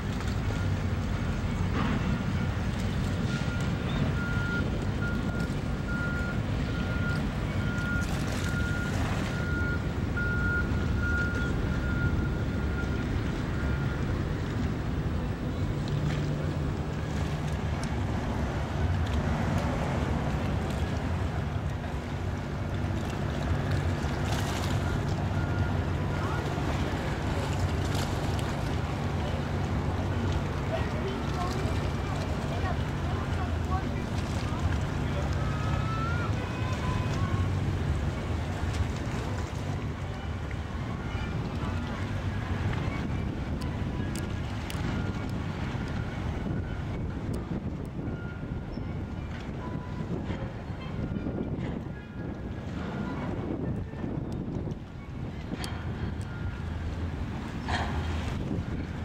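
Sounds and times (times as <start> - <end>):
wind buffeting microphone: 39.9 - 59.0.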